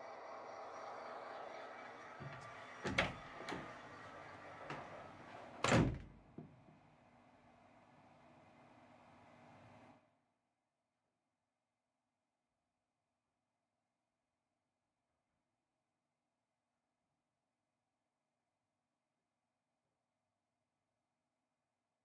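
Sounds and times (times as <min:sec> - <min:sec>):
faint room noise: 0:00.0 - 0:10.3.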